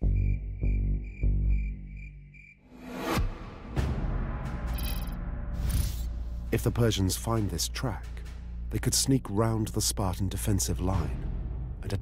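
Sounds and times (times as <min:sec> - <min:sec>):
cricket chirping: 0:00.0 - 0:02.6, 0:04.7 - 0:06.0.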